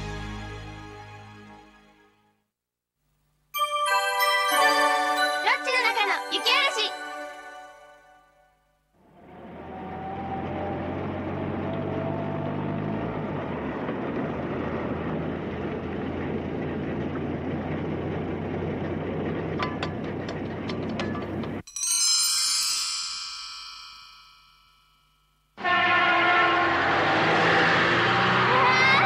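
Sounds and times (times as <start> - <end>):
bright high sustained chord: 3.6 - 8.8
train rumble: 11.0 - 21.6.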